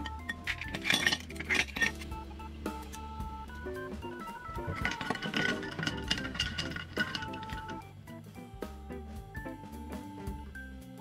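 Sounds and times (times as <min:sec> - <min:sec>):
spoon clinking in glass: 0:00.0 - 0:02.0, 0:04.8 - 0:07.8
background music: 0:00.0 - 0:11.0.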